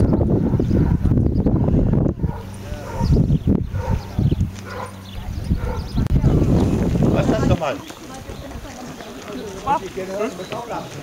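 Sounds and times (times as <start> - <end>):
dog barking: 0.4 - 1.0, 2.2 - 5.0, 5.6 - 6.0.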